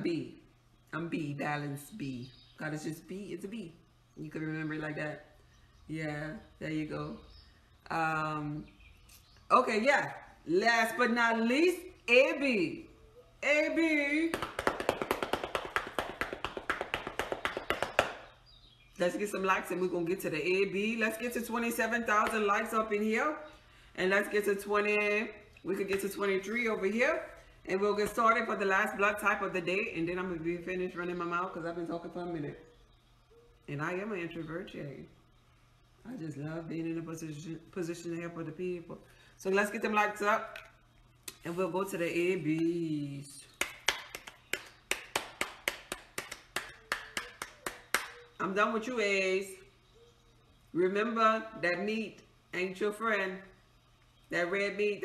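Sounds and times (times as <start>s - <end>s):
hand claps: 14.3s - 18.3s, 43.6s - 48.2s.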